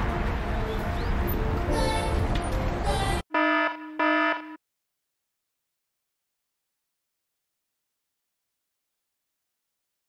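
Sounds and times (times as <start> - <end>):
road and wind noise while cycling: 0.0 - 3.3
electronic buzzer tones: 3.3 - 4.6.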